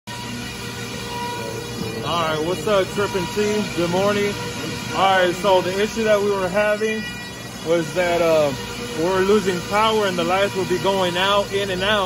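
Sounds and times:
factory machinery hum: 0.1s - 12.0s
fan noise: 0.1s - 12.0s.

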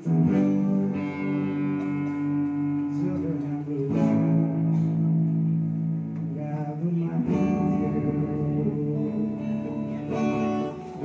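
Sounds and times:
drums: 0.0s - 11.0s
electric guitar chords: 0.0s - 11.0s.

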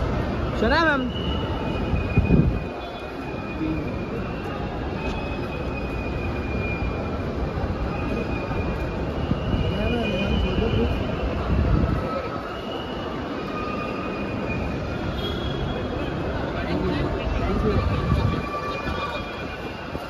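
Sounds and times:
traffic rumble: 0.0s - 20.0s.

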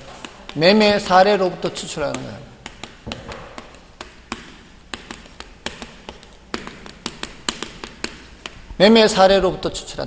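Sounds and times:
chalk tapping on blackboard: 0.0s - 8.7s.

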